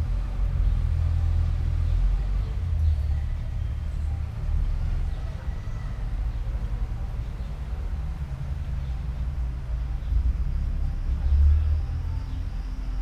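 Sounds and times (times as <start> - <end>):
passing traffic rumble: 0.0 - 13.0.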